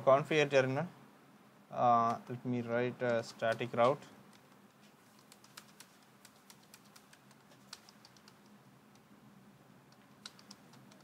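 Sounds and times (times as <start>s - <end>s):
keyboard typing: 3.1s - 9.1s, 9.9s - 11.0s.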